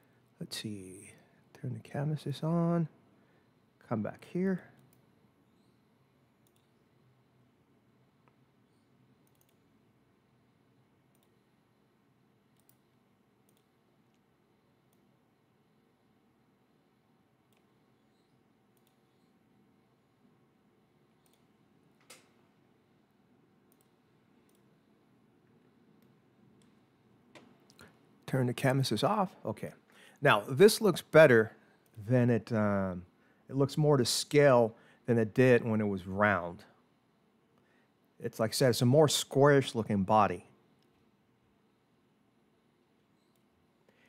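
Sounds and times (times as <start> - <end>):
faint computer mouse clicks: 6.4 - 6.8, 8.2 - 9.7, 11.1 - 11.4, 12.6 - 12.9, 13.5 - 14.2, 17.5 - 19.3, 21.2 - 22.4, 23.7 - 24.7, 43.2 - 44.0.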